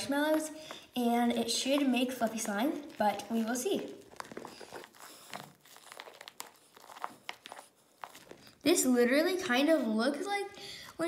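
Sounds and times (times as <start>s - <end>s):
spatula stirring foamy mix: 0.0s - 10.3s.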